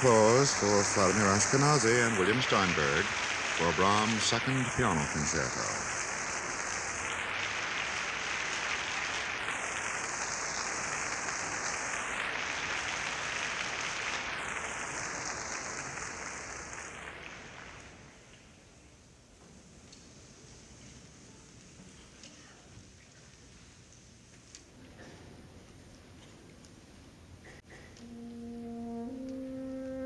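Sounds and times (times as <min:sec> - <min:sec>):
audience applauding: 0:00.0 - 0:18.1.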